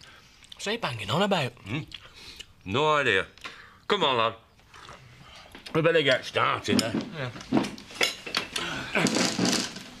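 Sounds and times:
crockery clinking and knocking: 0:06.6 - 0:09.9.

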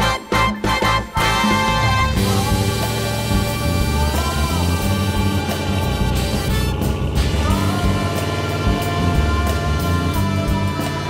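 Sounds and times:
instrumental music with beat and bass: 0:00.0 - 0:11.0.

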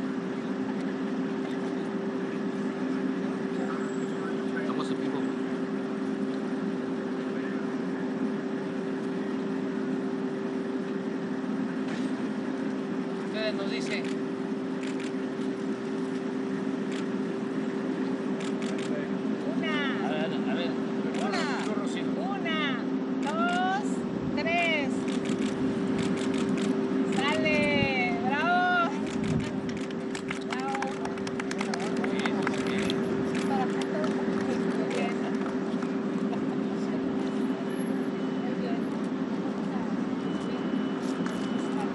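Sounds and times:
steady mechanical hum: 0:00.0 - 0:41.9.

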